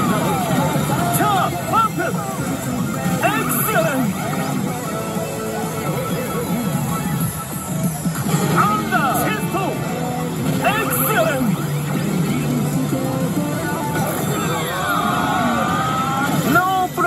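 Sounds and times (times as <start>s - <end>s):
electronic sound effects: 0.0s - 17.0s
slot machine game music: 0.0s - 17.0s.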